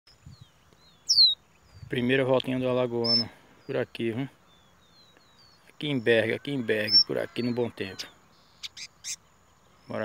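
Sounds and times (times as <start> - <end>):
bird whistling: 0.9 - 1.4, 3.0 - 3.3, 8.3 - 9.2.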